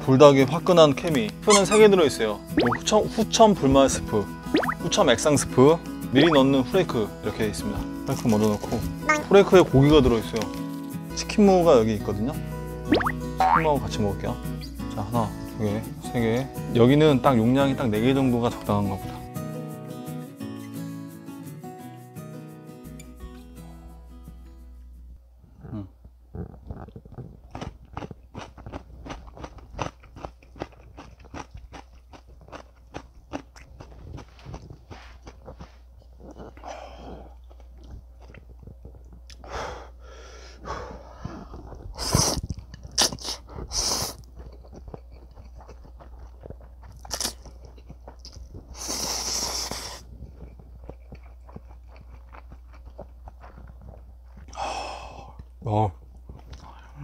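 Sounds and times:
slurping noodles: 0:02.6 - 0:02.8, 0:04.5 - 0:04.8, 0:41.2 - 0:44.7, 0:48.7 - 0:50.4
person crunching pickled radish: 0:26.7 - 0:39.4, 0:41.6 - 0:54.6.

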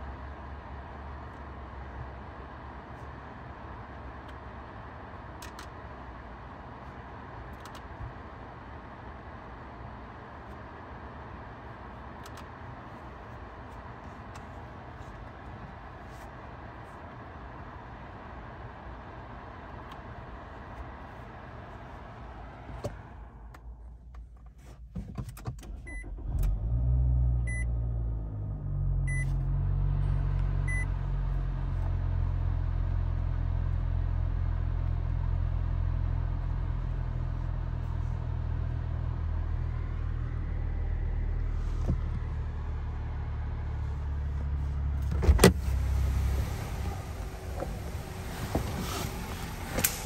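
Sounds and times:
car engine starting and idling: 0:00.0 - 0:50.0.

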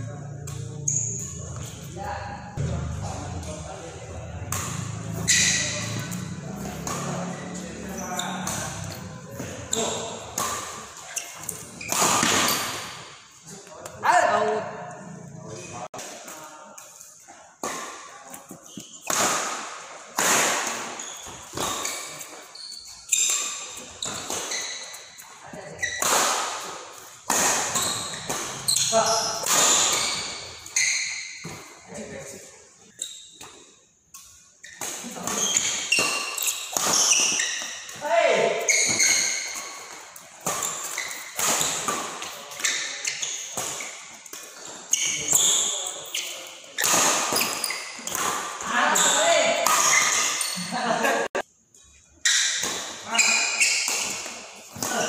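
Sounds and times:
players' voices: 0:00.0 - 0:12.7
shoes squeaking on court floor: 0:00.2 - 0:02.0, 0:04.5 - 0:13.7, 0:16.8 - 0:50.9, 0:51.8 - 0:55.0
racket striking shuttlecock: 0:04.4 - 0:07.3, 0:25.9 - 0:30.4.

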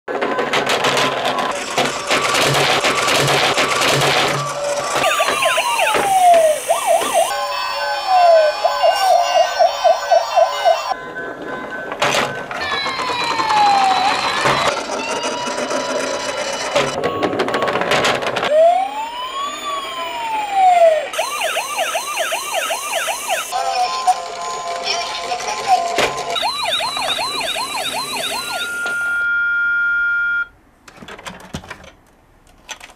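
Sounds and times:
toy police car sirens: 0:00.8 - 0:11.0, 0:12.5 - 0:30.5
noisy electronic sound effect: 0:02.3 - 0:07.4.

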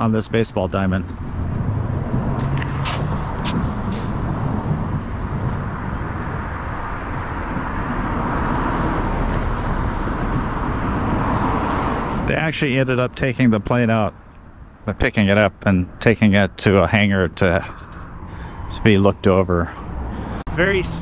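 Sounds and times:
road traffic rumble: 0:00.0 - 0:21.0
vehicle approaching: 0:00.0 - 0:21.0.

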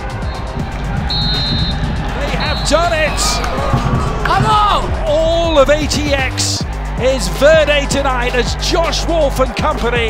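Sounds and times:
background music: 0:00.0 - 0:10.0
referee's whistle blast: 0:00.2 - 0:03.4
men shouting: 0:01.8 - 0:07.4.

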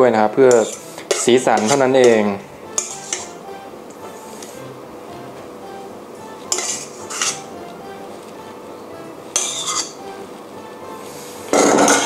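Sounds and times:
soft background music: 0:00.0 - 0:12.0
metal spoon scraping bowl: 0:00.5 - 0:03.4, 0:06.4 - 0:07.5, 0:09.3 - 0:10.0, 0:11.5 - 0:12.0.

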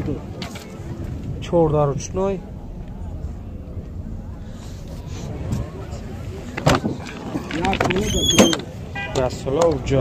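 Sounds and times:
low rumble: 0:00.0 - 0:08.9.

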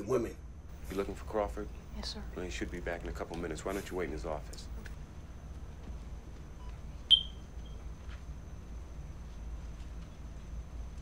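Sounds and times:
faint low hum: 0:00.0 - 0:11.0
short high-pitched electronic beep: 0:07.1 - 0:07.4.

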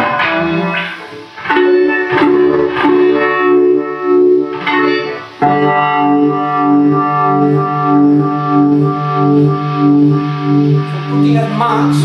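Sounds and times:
fuzzy electric guitar notes: 0:00.0 - 0:12.0.

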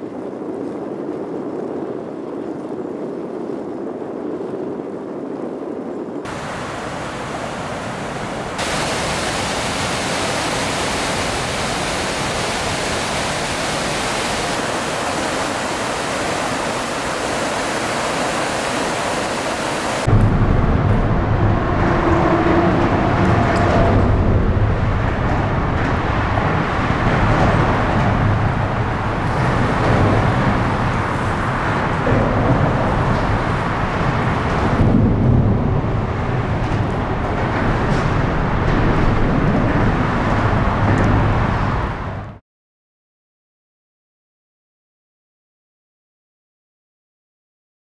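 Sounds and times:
steady hiss: 0:06.3 - 0:20.1
deep rushing rumble: 0:06.3 - 0:42.0.

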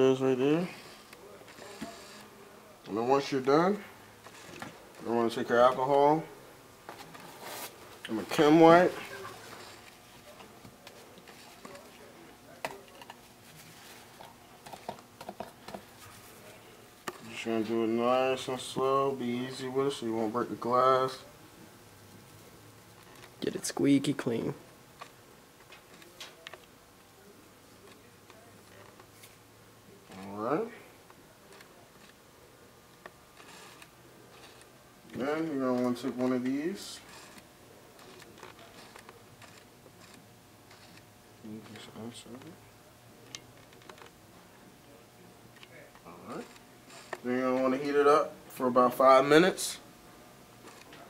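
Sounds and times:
soft ticks and rustles: 0:33.0 - 0:42.6.

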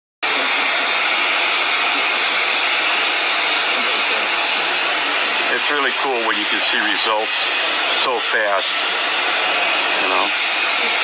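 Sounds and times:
fan blowing hiss: 0:00.3 - 0:11.0.

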